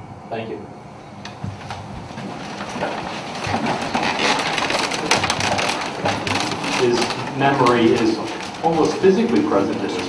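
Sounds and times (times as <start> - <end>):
wooden chairs creaking and knocking: 1.3 - 10.0
person speaking: 6.6 - 10.0.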